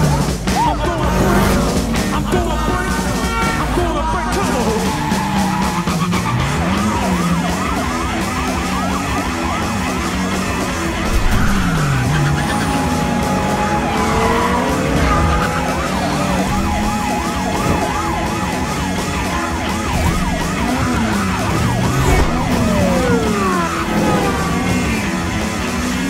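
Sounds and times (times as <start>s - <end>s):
car engines revving: 0.0s - 26.0s
police sirens warbling: 0.0s - 26.0s.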